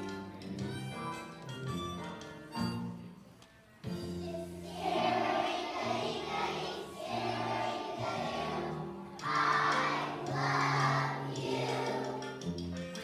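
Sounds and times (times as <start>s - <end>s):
instrumental accompaniment: 0.0s - 13.0s
children's choir singing: 4.0s - 12.7s.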